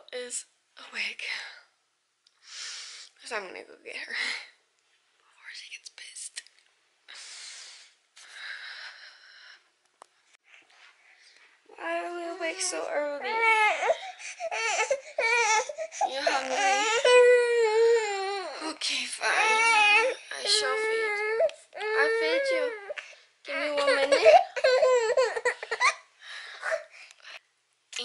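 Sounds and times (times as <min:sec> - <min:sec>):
baby crying: 0:12.5 - 0:26.0.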